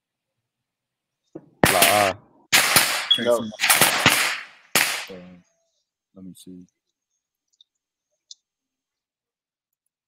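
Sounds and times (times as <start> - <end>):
distorted voice over video call: 1.7 - 2.2, 3.1 - 3.7.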